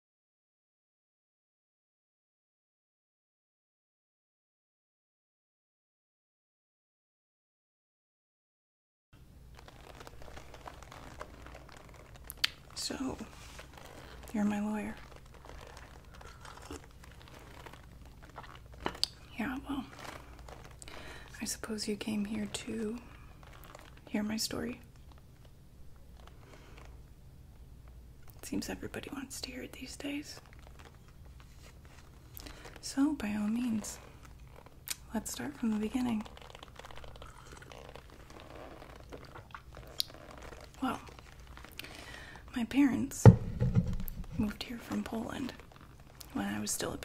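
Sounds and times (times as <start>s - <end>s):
faint rustling and handling: 9.2s - 47.0s
sipping and swallowing: 15.2s - 19.3s, 36.4s - 40.4s.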